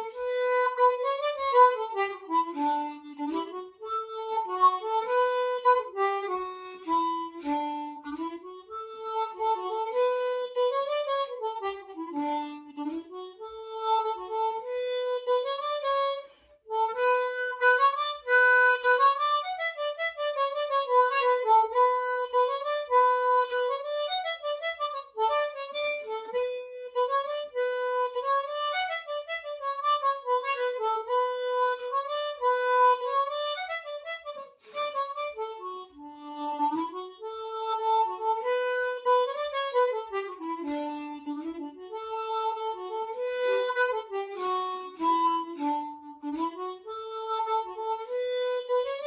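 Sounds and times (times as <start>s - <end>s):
harmonica melody: 0.0s - 49.0s.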